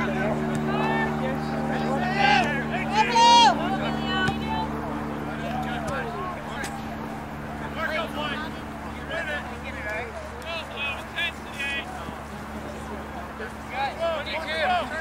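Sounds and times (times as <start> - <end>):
players and spectators shouting: 0.0 - 15.0
steady low hum: 0.0 - 15.0.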